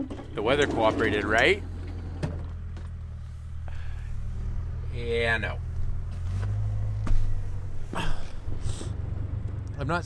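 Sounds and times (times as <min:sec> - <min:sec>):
steady low rumble: 0:01.6 - 0:10.0.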